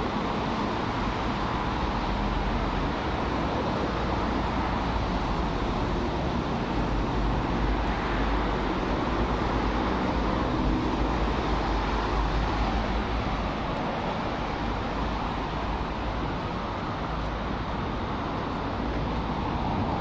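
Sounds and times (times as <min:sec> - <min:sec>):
road traffic rumble: 0:00.0 - 0:20.0.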